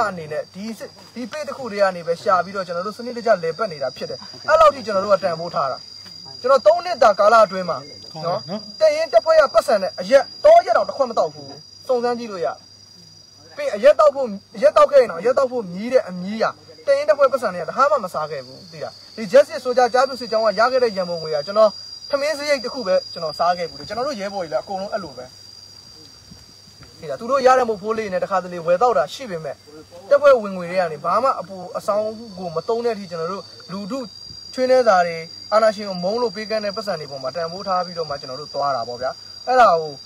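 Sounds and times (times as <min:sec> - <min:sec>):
man talking: 0:00.0 - 0:12.6, 0:13.5 - 0:25.3, 0:26.9 - 0:40.0
high-pitched insect drone: 0:00.0 - 0:40.0.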